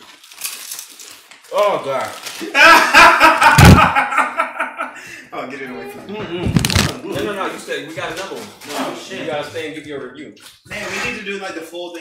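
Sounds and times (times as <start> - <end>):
group of people laughing: 2.4 - 5.1
heavy thump: 3.6 - 4.0.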